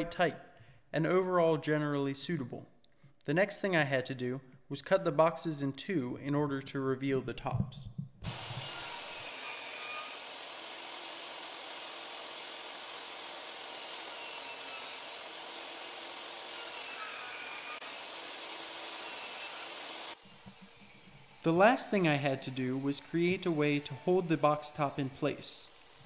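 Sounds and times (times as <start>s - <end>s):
table saw cutting wood: 8.2s - 26.0s.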